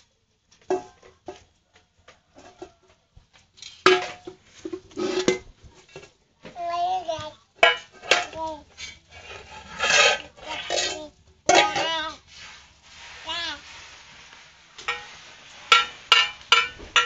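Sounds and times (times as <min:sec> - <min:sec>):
metal bowl clanging: 0:03.7 - 0:06.1, 0:07.6 - 0:12.2, 0:14.8 - 0:17.0
toddlers babbling and squealing: 0:06.5 - 0:07.5, 0:10.4 - 0:12.2.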